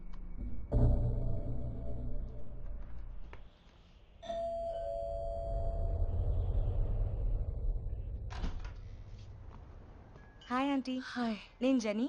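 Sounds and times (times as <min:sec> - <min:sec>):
low rumble: 0:00.0 - 0:03.4, 0:05.2 - 0:10.2
two-tone doorbell chime: 0:04.2 - 0:06.1.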